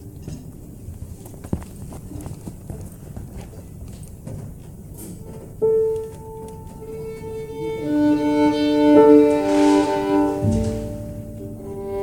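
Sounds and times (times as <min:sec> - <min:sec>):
hard shoes on wooden floor: 0:09.4 - 0:11.6.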